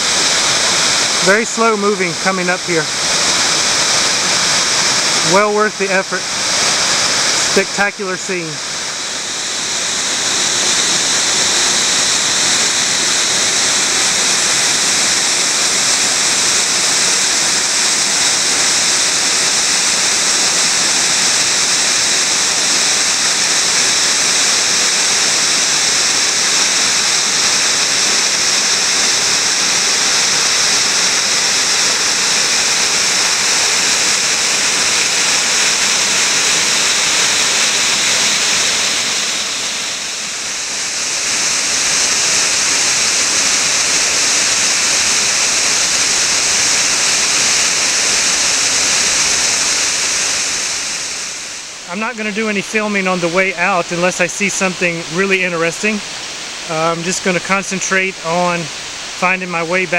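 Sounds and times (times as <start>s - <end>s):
waterfall rushing: 0.0s - 59.9s.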